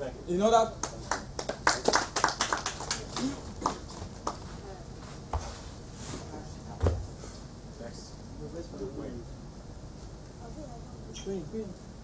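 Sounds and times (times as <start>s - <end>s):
people clapping: 0.8s - 4.5s.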